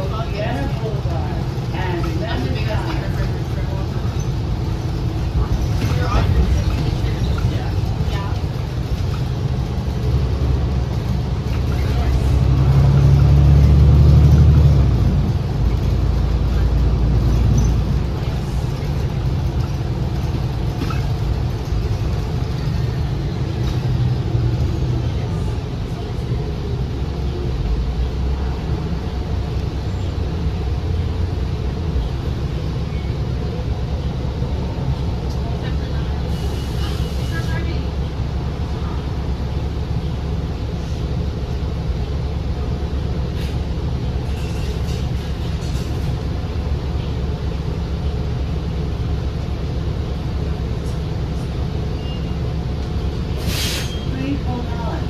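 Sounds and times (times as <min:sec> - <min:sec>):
bus engine drone: 0:00.0 - 0:55.0
road and tyre noise: 0:00.0 - 0:55.0.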